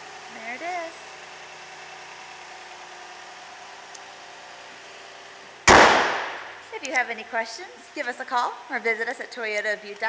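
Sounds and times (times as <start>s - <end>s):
car engine idling: 0.0s - 7.4s
car hood slammed shut: 5.7s - 6.5s.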